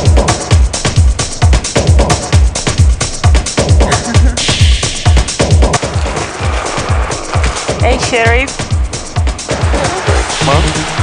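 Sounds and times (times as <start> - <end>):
electronic dance music: 0.0 - 11.0
steady kick drum beat: 0.0 - 11.0.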